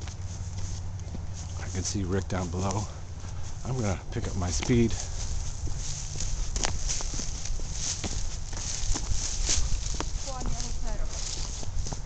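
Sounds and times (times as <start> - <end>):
footsteps crunching on leafy trail: 0.0 - 12.0
steady low rumble: 0.0 - 12.0.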